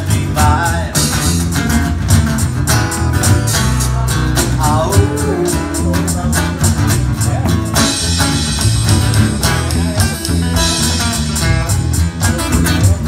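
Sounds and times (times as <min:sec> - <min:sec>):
guitar strumming: 0:00.0 - 0:13.0.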